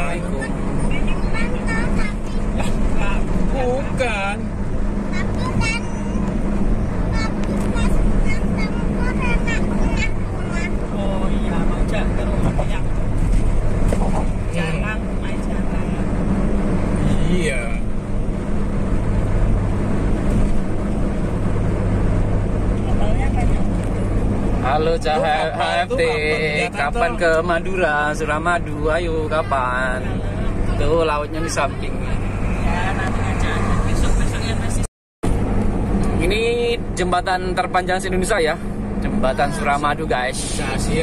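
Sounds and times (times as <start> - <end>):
car engine and tyres droning: 0.0 - 41.0
indistinct voices: 29.0 - 34.9.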